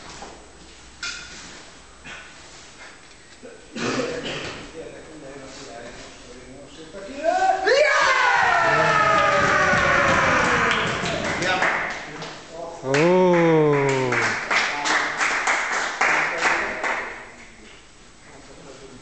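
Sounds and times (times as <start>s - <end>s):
group shouting in hall: 7.3s - 11.1s
people clapping: 8.2s - 17.5s
man giving long call: 12.8s - 14.4s.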